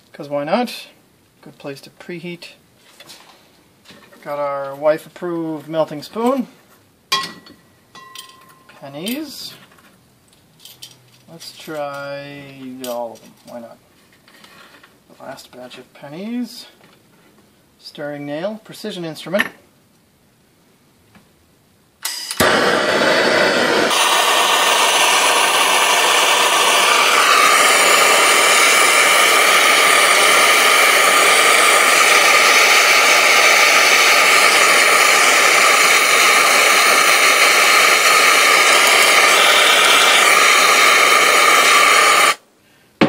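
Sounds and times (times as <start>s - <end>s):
blowtorch flame hissing: 22.2s - 42.4s.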